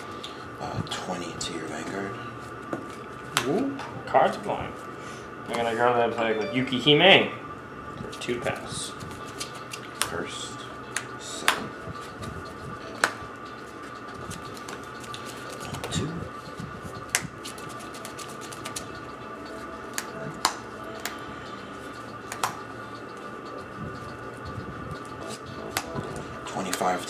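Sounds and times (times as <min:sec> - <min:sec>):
faint background hum: 0:00.0 - 0:27.0
trading cards clicking and tapping: 0:10.9 - 0:13.2, 0:14.1 - 0:16.1, 0:17.0 - 0:19.0, 0:22.3 - 0:22.7, 0:25.0 - 0:27.0.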